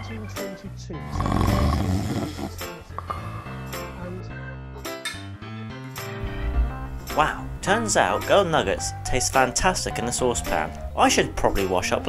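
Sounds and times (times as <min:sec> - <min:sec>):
background music: 0:00.0 - 0:12.0
person snoring: 0:01.0 - 0:04.1.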